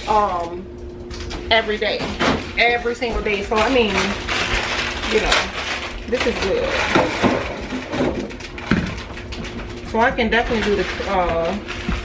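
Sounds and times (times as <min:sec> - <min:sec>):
packaging rustling: 0:03.3 - 0:12.0.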